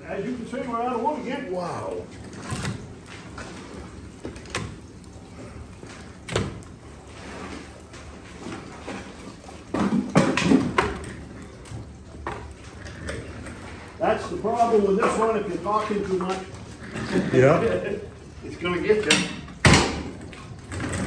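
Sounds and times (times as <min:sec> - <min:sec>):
firebox door knocks and clanks: 0:19.1 - 0:20.1.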